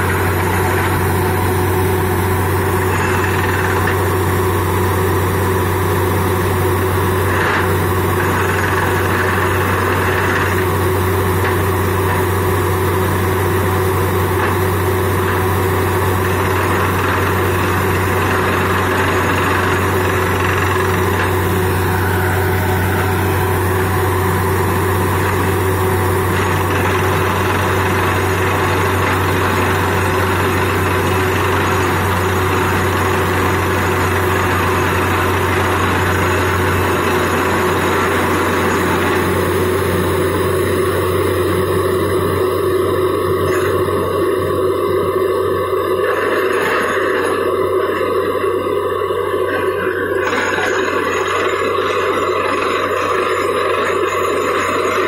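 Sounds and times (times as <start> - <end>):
drilling rig engine drone: 0.0 - 55.0.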